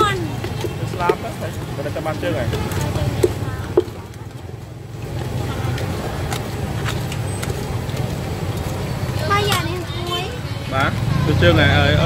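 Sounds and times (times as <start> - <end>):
people talking: 0.0 - 4.5, 5.2 - 6.6, 9.1 - 12.0
street background rumble: 0.0 - 12.0.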